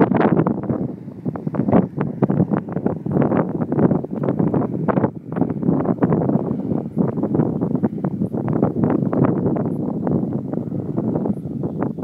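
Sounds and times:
rumbling and crackling microphone noise: 0.0 - 12.0.

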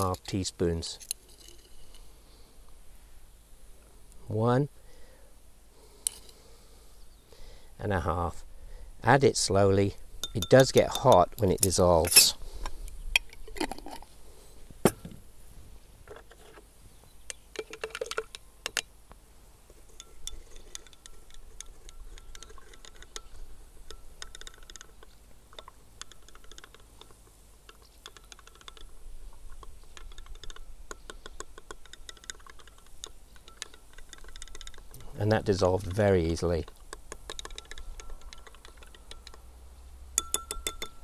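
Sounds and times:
stirring rod clinking on glass: 10.2 - 12.3, 19.9 - 28.9, 29.6 - 34.9, 37.2 - 39.4, 40.2 - 41.0.

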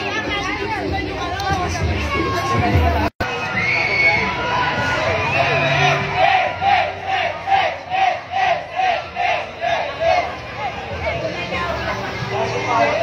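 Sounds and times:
crowd noise: 0.0 - 13.0
marchers chanting in unison: 5.7 - 11.2.

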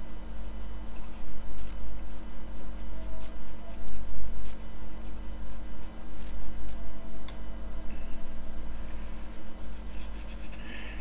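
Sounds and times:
low electrical hum: 0.0 - 11.0
paintbrush swishes on paper: 9.2 - 10.9.

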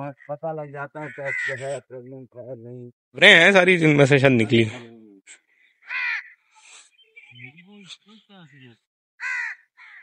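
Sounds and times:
bird calling: 5.4 - 10.0.

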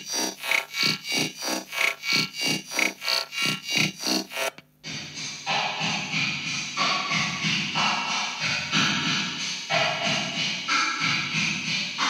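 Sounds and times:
synthesizer rhythm pattern: 0.0 - 12.0.

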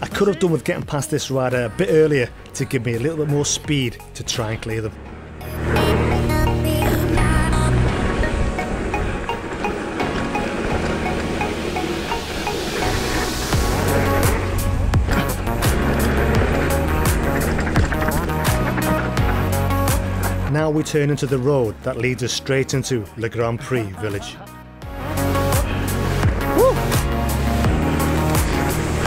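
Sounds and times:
bike tyres rumbling on gravel: 0.0 - 23.4, 24.9 - 29.0
electronic music: 23.7 - 29.0.

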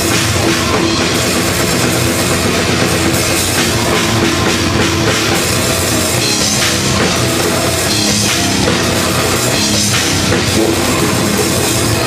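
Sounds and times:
fast kick drum strokes: 0.0 - 12.0
heavy metal band playing live: 0.0 - 12.0.

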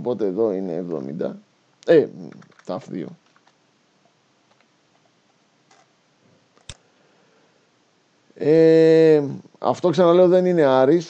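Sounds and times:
computer mouse clicks: 2.3 - 3.6, 4.5 - 5.1.

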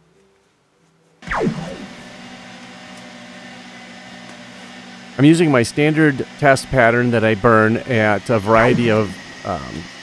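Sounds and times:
machine hum with held tones: 1.2 - 10.0.

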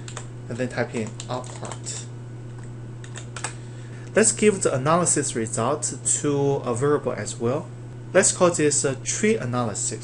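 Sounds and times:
keyboard keystrokes clicking: 0.0 - 1.9, 3.0 - 3.6
steady low hum: 0.0 - 10.0.

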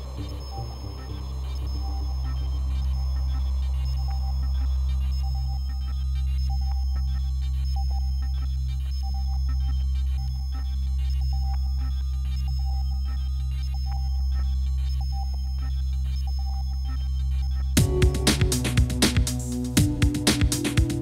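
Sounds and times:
low synthesizer bass drone: 0.0 - 21.0.

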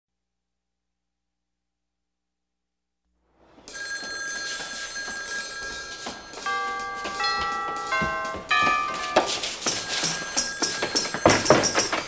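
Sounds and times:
pitched tones: 3.6 - 11.4
telephone bell ringing: 3.7 - 12.0.

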